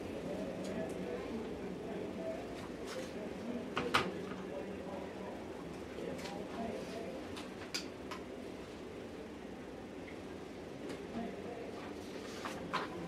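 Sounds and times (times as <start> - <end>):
distant indistinct voices: 0.0 - 7.4.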